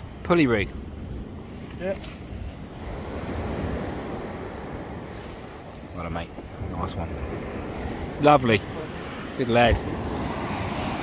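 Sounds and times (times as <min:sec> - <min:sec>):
sea surf breaking: 0:00.0 - 0:11.0
wind buffeting microphone: 0:00.0 - 0:11.0.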